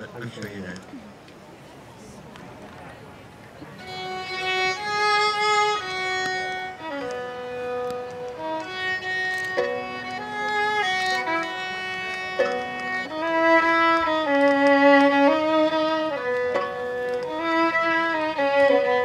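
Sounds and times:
solo violin slow melody: 3.7 - 19.0.

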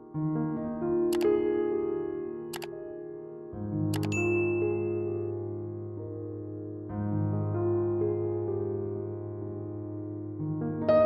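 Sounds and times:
soft background music: 0.6 - 10.3
bright bell ding: 4.0 - 5.2
button click: 4.0 - 5.2.

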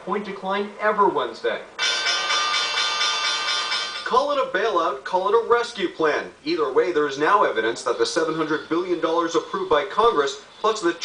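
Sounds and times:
bell ringing continuously: 1.8 - 4.1, 8.2 - 9.5.

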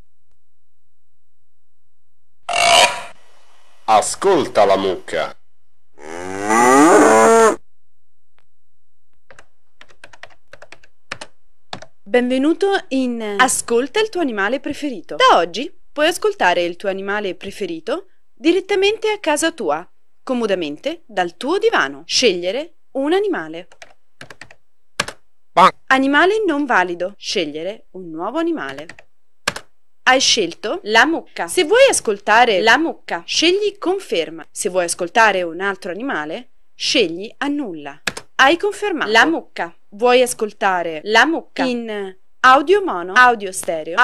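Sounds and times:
buzzy error tone: 2.5 - 3.2
keyboard keys clicking: 9.3 - 11.9, 23.7 - 25.2.

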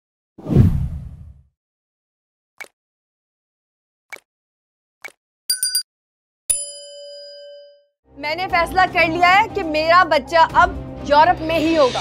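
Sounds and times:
swoosh with deep rumble: 0.4 - 1.4.

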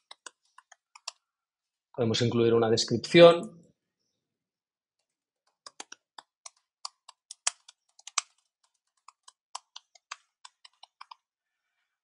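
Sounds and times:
keyboard typing: 0.0 - 1.2, 5.0 - 11.2.

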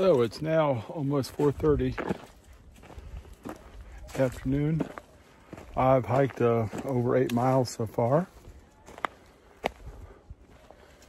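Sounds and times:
footsteps on leaf litter: 0.0 - 11.0.

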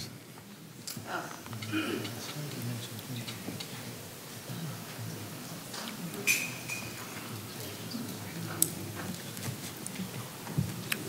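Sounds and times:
faint low murmur: 0.0 - 11.0.

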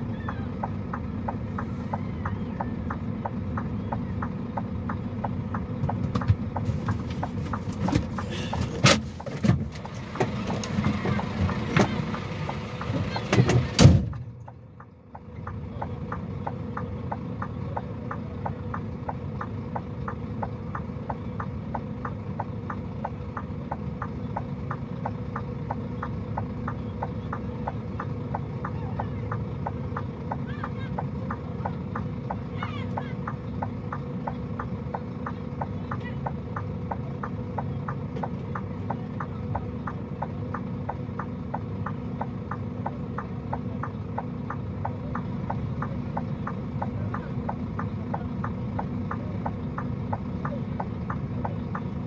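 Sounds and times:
regular engine ticking: 0.0 - 52.0
vehicle engine idling: 0.0 - 52.0.

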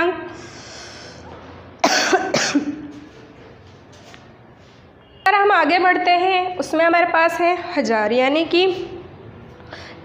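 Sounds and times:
woman coughing: 1.8 - 3.0.

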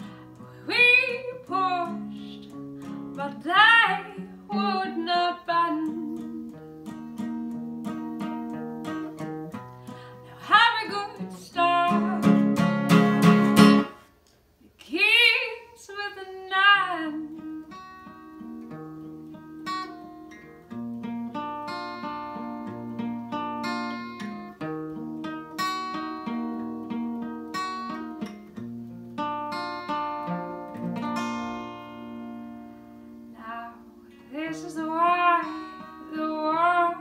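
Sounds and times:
acoustic guitar: 0.0 - 37.0.

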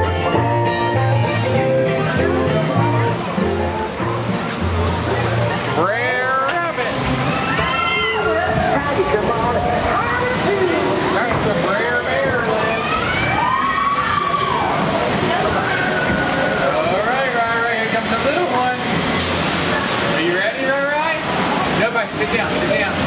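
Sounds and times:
water rushing and sloshing: 0.0 - 23.0
indistinct voices: 1.3 - 23.0.

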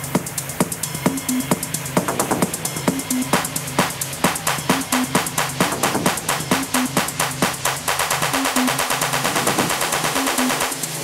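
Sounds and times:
electronic percussion ticks: 0.0 - 11.0.

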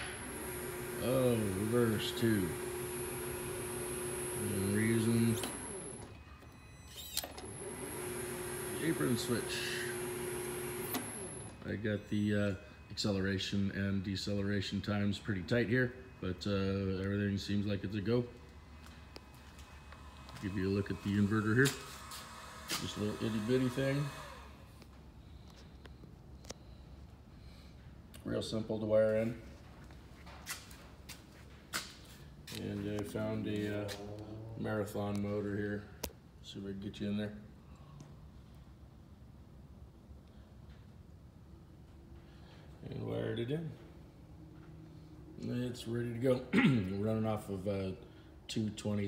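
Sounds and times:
lathe motor humming and whining: 0.0 - 6.2, 7.4 - 11.6, 18.6 - 24.7.

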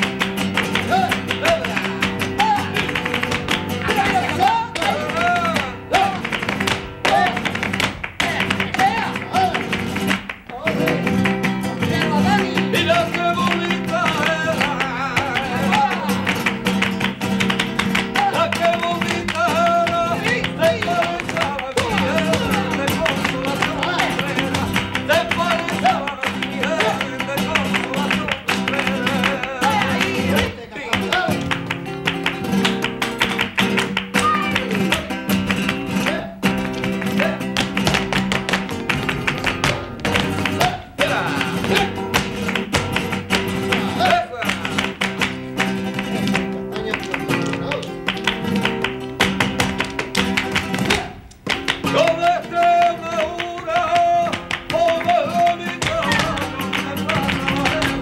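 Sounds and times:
dancers' heels clicking: 0.0 - 58.0
rhythmic hand clapping: 0.0 - 58.0.

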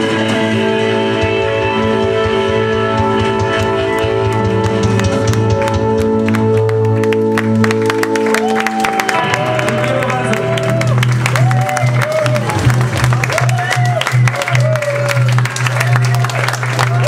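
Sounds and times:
audience clapping and cheering: 3.1 - 17.0
people shouting: 8.4 - 12.4
electric guitar chord ringing: 9.0 - 11.3.

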